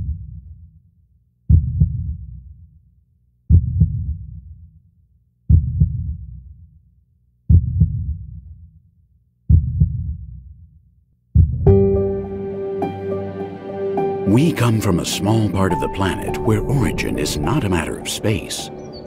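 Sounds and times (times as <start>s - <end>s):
heartbeat double thump: 3.5s - 4.2s, 5.5s - 6.2s, 7.5s - 8.2s, 11.4s - 11.8s.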